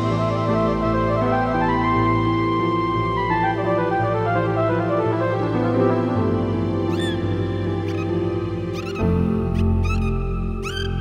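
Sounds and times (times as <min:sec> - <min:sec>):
slow relaxation music: 0:00.0 - 0:11.0
dolphin whistles and clicks: 0:06.9 - 0:07.2, 0:07.9 - 0:11.0.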